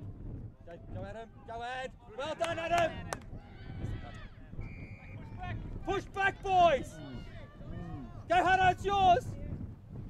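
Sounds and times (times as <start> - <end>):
whistle blast: 4.6 - 5.3
spectators shouting: 5.9 - 8.7.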